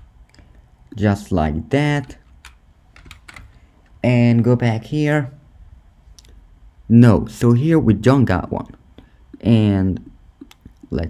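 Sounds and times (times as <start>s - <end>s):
computer keyboard clicks: 2.2s - 3.5s.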